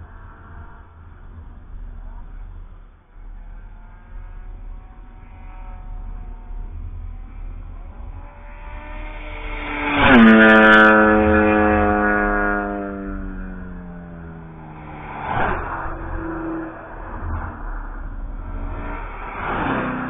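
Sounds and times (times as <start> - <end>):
another car engine: 0.0 - 20.0
race car passing by: 0.0 - 20.0.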